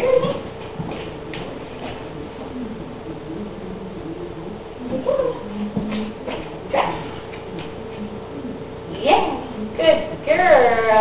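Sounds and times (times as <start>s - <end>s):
dog whining: 1.3s - 8.7s.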